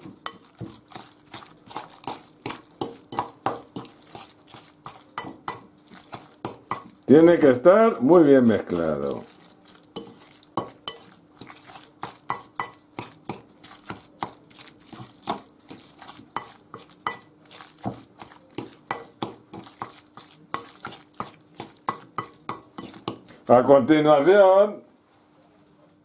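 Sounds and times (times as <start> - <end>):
fork scraping a glass bowl: 0.2 - 6.9, 8.7 - 23.4.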